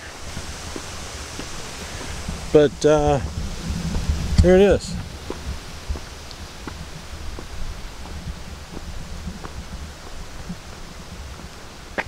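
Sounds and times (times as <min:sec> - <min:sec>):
steady hiss: 0:00.0 - 0:12.0
wind rumble on microphone: 0:00.0 - 0:12.0.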